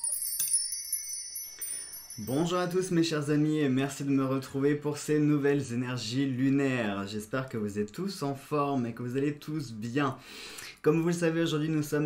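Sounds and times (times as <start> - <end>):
high-pitched chimes ringing: 0.0 - 3.4.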